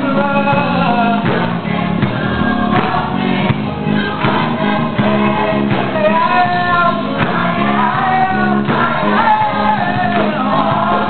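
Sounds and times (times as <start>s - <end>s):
accompaniment with steady beat: 0.0s - 11.0s
gospel choir singing: 0.0s - 11.0s.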